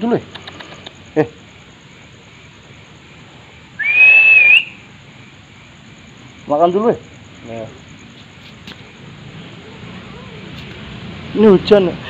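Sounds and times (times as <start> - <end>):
person whistling: 3.8 - 4.8.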